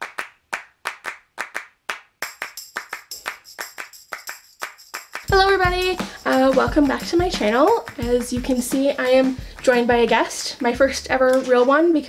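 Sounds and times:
handclaps in quick rhythm: 0.0 - 10.3
music track: 2.3 - 12.0.

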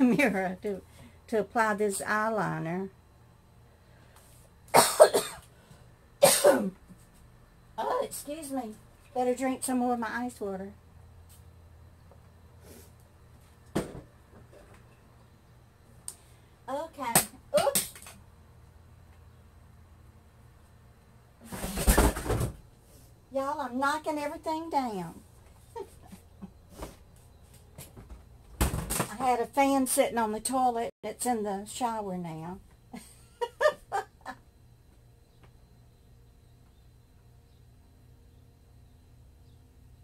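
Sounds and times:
woman coughing: 4.8 - 5.4, 6.2 - 6.8
small fan clattering and tumbling: 21.4 - 30.8.

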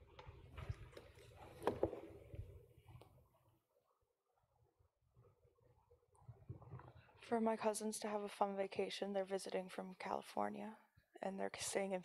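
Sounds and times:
microphone handling rumble and rustle: 0.0 - 3.0, 6.2 - 7.1.

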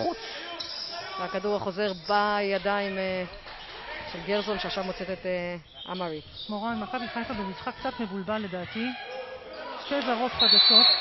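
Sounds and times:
players' voices: 0.0 - 11.0
referee's whistle: 10.3 - 11.0.

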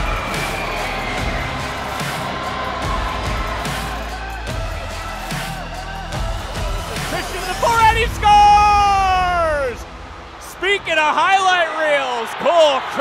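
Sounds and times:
background music: 0.0 - 13.0
crowd cheering: 0.0 - 13.0.

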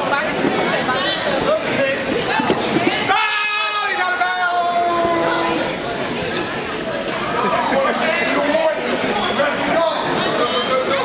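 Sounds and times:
voices calling out in a gym: 0.0 - 11.0.

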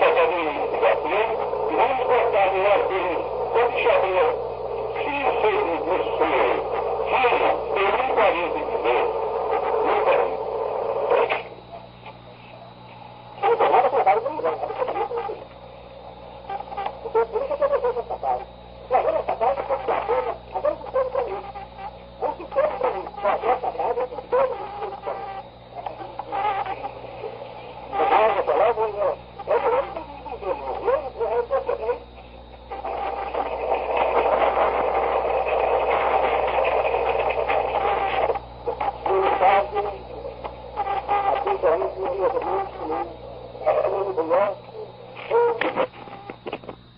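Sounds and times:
muffled man speaking on tape: 0.0 - 15.6, 16.5 - 46.7
low electrical hum: 0.0 - 46.9.

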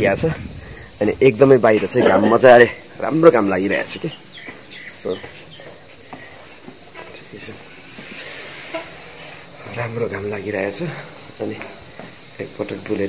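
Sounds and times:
high-pitched insect chorus: 0.0 - 13.0.

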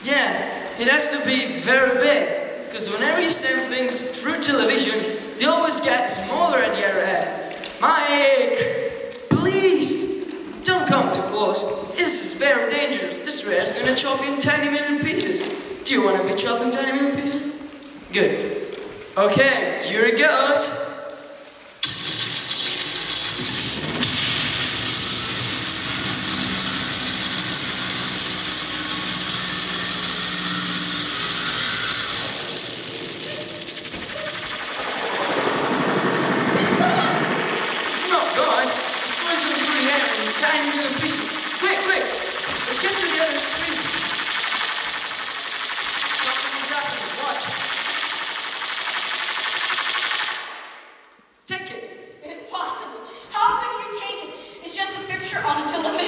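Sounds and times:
whooshing machine hum: 21.8 - 50.8
choppy voice-like sounds: 33.1 - 44.2.

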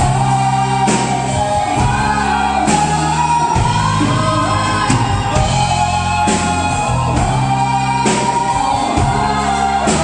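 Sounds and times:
bass guitar: 0.0 - 10.0
drums: 0.0 - 10.0
woman singing: 0.0 - 10.0.

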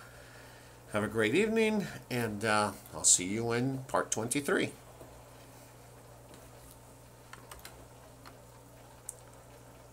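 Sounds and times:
low steady hum: 0.0 - 9.9
computer keys clicking: 7.3 - 7.8.

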